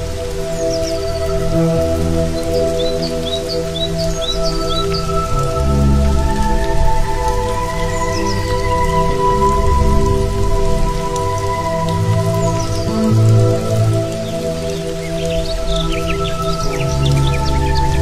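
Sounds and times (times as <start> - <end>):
calm instrumental music: 0.0 - 18.0
steady rain: 0.0 - 18.0.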